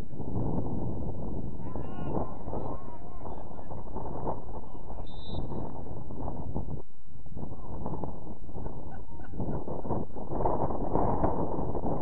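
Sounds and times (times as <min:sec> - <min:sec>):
wind rumble on microphone: 0:00.0 - 0:12.0
distant shout: 0:01.6 - 0:03.7.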